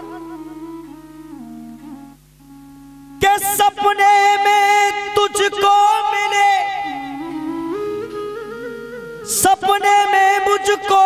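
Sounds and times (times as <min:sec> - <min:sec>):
held instrumental notes: 0:00.0 - 0:03.2, 0:06.9 - 0:09.4.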